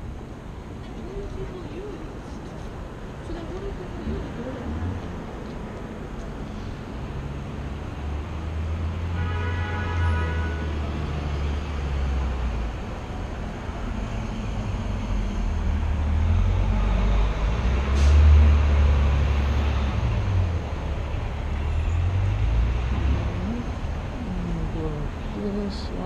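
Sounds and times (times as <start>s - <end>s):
rumble of passing vehicles: 0.0s - 26.0s.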